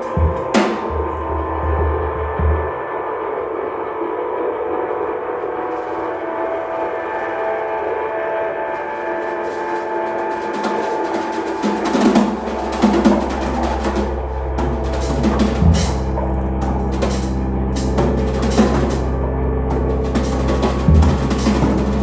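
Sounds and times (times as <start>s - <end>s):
drum kit strokes: 0.0s - 3.0s, 8.6s - 22.0s
deep low tone: 0.0s - 6.6s, 12.4s - 22.0s
drone of held tones: 0.0s - 22.0s.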